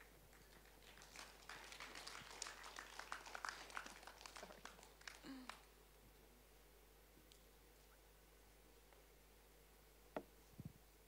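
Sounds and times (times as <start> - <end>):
low hush of large hall: 0.0 - 11.0.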